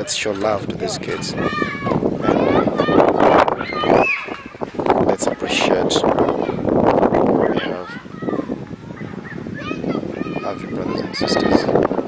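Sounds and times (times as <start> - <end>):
noisy background: 0.0 - 12.0
high-pitched voices calling out: 0.7 - 11.9.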